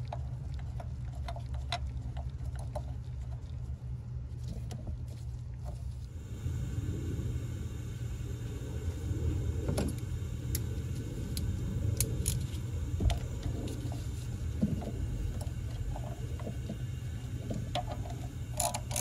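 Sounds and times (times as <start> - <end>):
low hum: 0.0 - 19.0.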